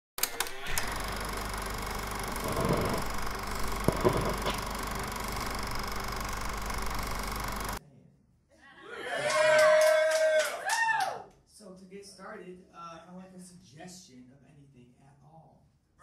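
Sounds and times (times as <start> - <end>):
rapid mechanical clatter with hum: 0.4 - 7.8.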